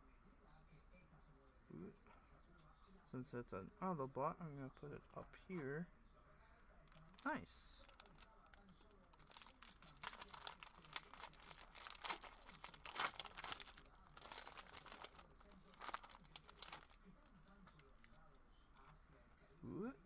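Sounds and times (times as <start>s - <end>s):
foil wrapper tearing and crinkling: 6.9s - 17.8s.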